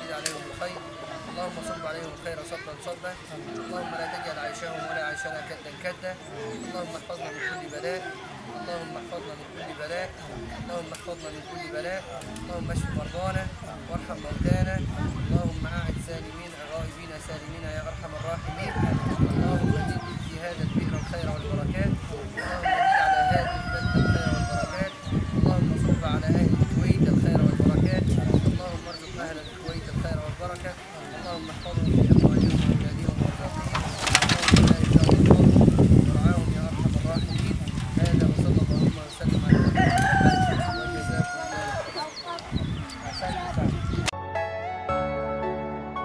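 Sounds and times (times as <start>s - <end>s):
small birds chirping: 0.0s - 44.1s
rooster crowing: 3.6s - 5.7s, 18.4s - 20.1s, 22.4s - 25.4s, 39.5s - 42.1s
low gusty rumble: 17.5s - 28.9s, 31.5s - 41.7s.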